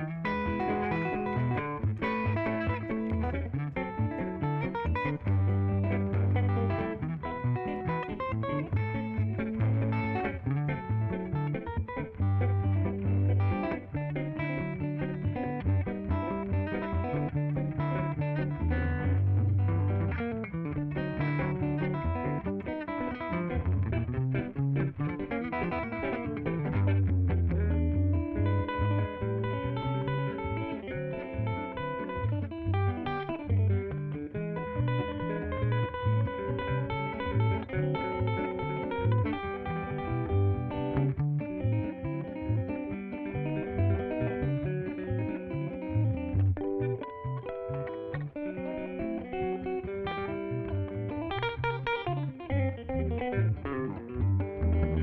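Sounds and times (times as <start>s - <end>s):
electric bass: 0.0s - 55.0s
guitars picking a tune: 0.0s - 55.0s.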